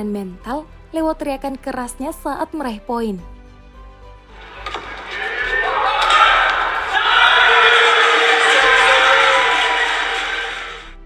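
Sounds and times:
crowd shouting and cheering: 4.4s - 11.0s
player yelling: 4.6s - 10.9s.

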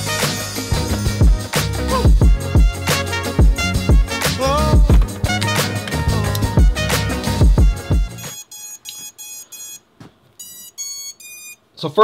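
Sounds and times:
music with heavy beat: 0.0s - 8.4s
electronic startup beeps: 10.4s - 11.6s.

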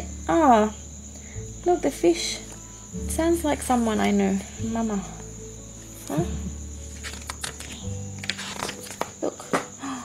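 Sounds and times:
paper page turning: 6.8s - 9.3s
paper crinkles and taps: 6.9s - 9.7s.

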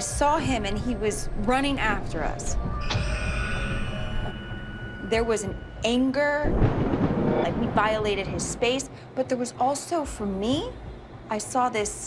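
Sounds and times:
low rumble: 0.0s - 9.2s
high ringing tones: 0.6s - 8.4s
sharp hit: 2.7s - 8.7s.

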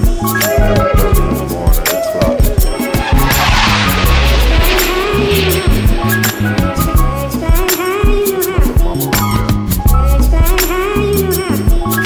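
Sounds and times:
music with drum beat and bass: 0.0s - 12.0s
rushing hissing noise: 2.8s - 7.8s.

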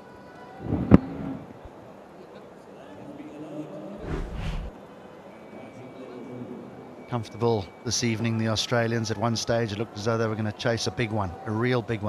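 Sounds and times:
stadium crowd noise: 0.0s - 12.0s
low rumble: 4.0s - 4.7s.

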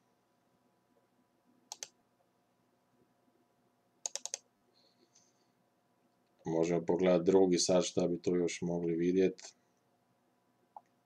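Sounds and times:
computer mouse clicks: 1.7s - 2.0s, 4.0s - 4.5s.

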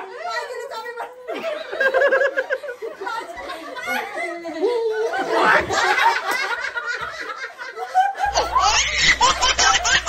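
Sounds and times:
group of people laughing: 1.2s - 10.0s.

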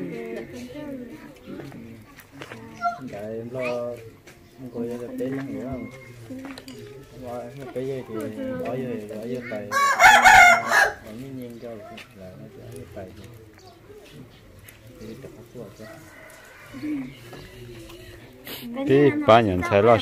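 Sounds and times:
quiet talking voices: 0.0s - 20.0s
rooster crowing: 9.7s - 11.1s, 15.7s - 17.2s.

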